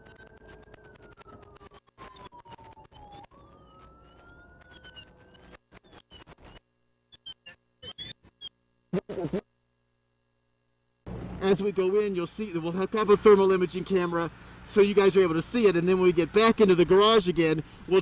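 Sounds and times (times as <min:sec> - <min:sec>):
fire truck siren wailing: 0:00.0 - 0:05.3.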